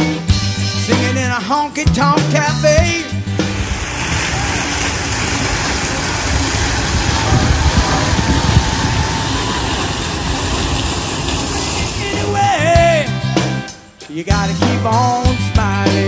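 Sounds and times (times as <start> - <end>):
fountain water splashing: 3.2 - 13.8.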